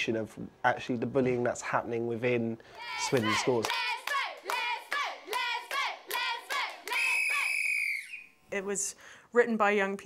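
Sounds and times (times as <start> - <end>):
girls chanting: 2.7 - 7.5.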